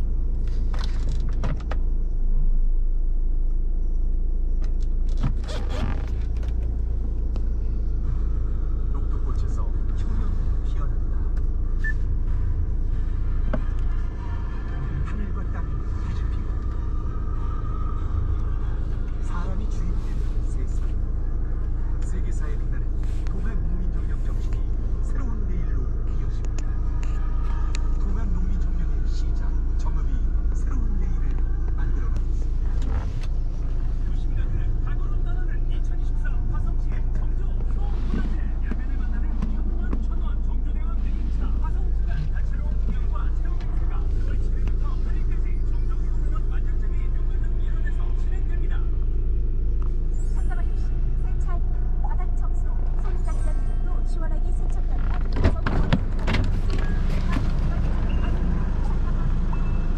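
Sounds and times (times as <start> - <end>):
car engine idling: 0.0 - 59.9
faint radio talk and music: 4.5 - 59.9.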